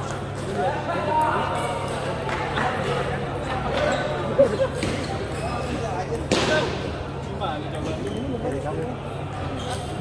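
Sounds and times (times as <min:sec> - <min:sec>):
voices in a sports hall: 0:00.0 - 0:10.0.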